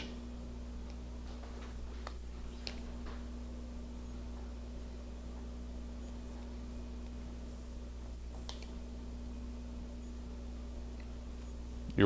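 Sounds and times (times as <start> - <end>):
low steady hum: 0.0 - 12.0
wire strippers clicking: 8.3 - 8.8.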